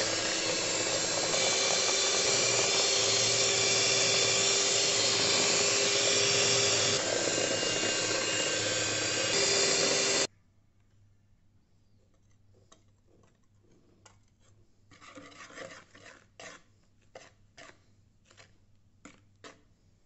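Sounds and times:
electric hand mixer running: 0:00.0 - 0:10.3.

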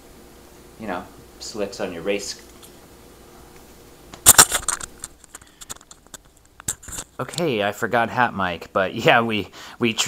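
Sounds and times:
microphone rubbing and clicks: 0:04.2 - 0:07.3.

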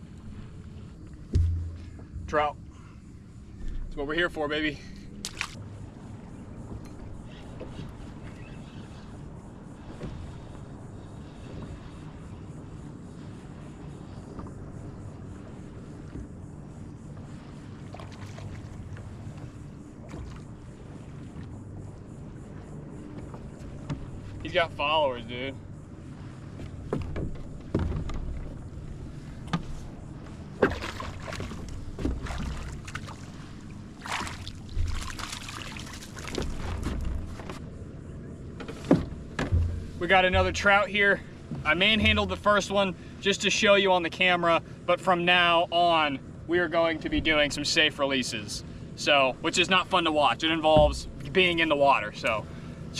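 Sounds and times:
water lapping on plastic hull: 0:00.0 - 0:12.3, 0:13.2 - 0:52.9
wind rumble on microphone: 0:00.0 - 0:43.0
water splash: 0:01.2 - 0:02.6, 0:05.2 - 0:05.6, 0:17.7 - 0:20.5, 0:29.5 - 0:37.5
sharp knocks on boat hull: 0:01.3 - 0:02.4, 0:38.6 - 0:40.7
wind buffeting microphone: 0:39.0 - 0:43.0.

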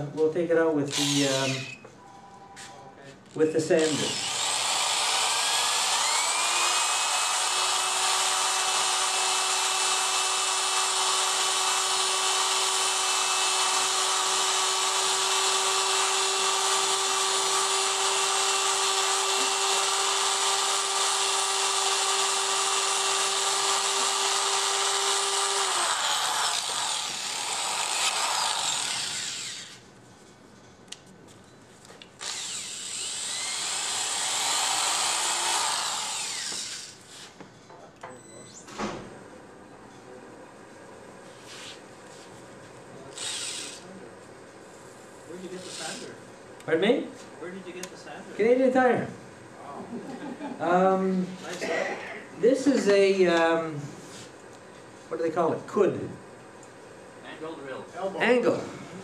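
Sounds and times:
electric drill whine: 0:00.9 - 0:01.9, 0:03.7 - 0:29.8, 0:32.2 - 0:37.3, 0:43.1 - 0:43.9.

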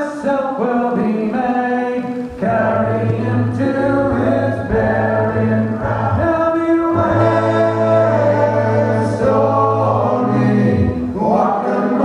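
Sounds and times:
male vocal group singing a cappella: 0:00.0 - 0:12.0.

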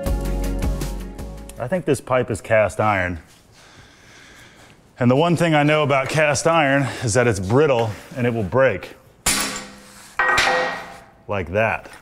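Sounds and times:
metallic ring: 0:09.3 - 0:11.2.

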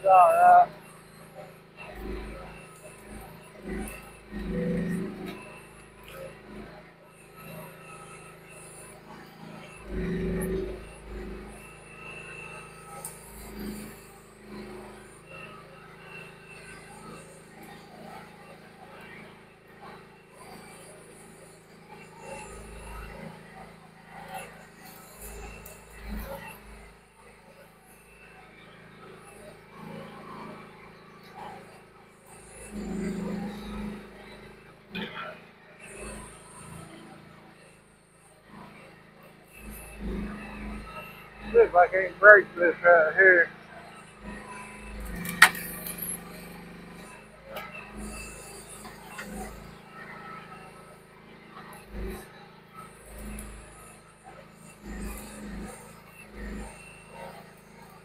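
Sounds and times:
mini excavator engine running: 0:00.0 - 0:58.0.

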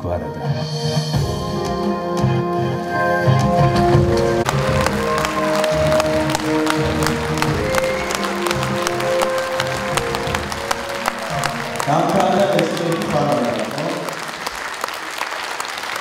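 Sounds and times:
music with long held notes: 0:00.0 - 0:14.5
audience applauding: 0:03.9 - 0:16.0.

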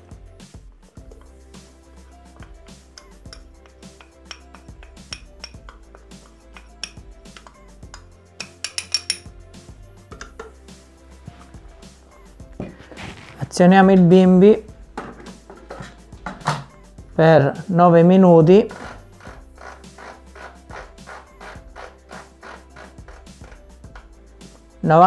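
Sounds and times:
soft background music: 0:00.0 - 0:25.0
glass clinking on metal bowl: 0:04.2 - 0:05.8, 0:06.6 - 0:09.3.

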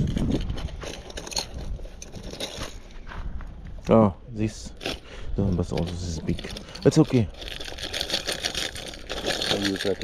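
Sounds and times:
hands rummaging through fabric bag: 0:05.9 - 0:10.0.

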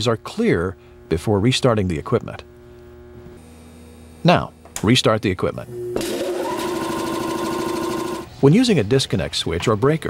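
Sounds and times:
air compressor motor whine: 0:05.5 - 0:08.4.

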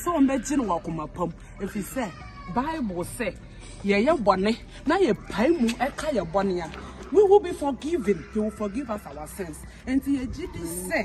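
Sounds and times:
woman wailing in high cries: 0:00.0 - 0:03.3, 0:05.0 - 0:11.0.

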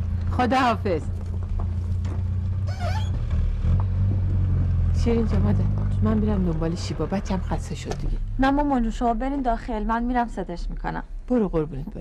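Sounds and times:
vehicle engine idling: 0:00.0 - 0:08.4.

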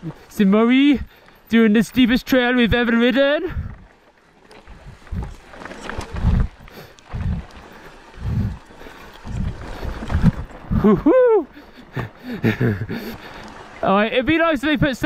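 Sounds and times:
bike tyres rattling over dirt: 0:00.0 - 0:15.0
rider whooping shout: 0:10.8 - 0:11.5.

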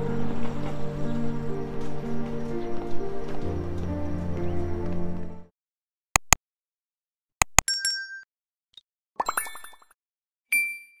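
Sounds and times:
mouse clicks: 0:06.2 - 0:06.4
bright ding: 0:10.5 - 0:11.0.

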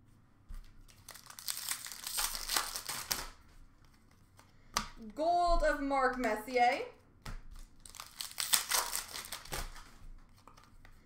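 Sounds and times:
foil wrapper tearing and crinkling: 0:00.9 - 0:03.4, 0:07.6 - 0:10.7
cards being handled: 0:07.0 - 0:11.0.

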